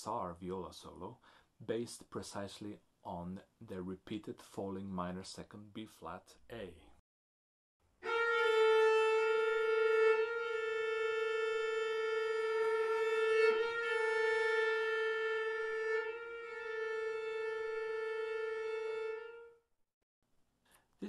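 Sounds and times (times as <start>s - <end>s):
string quartet holding bowed note: 8.0s - 19.6s.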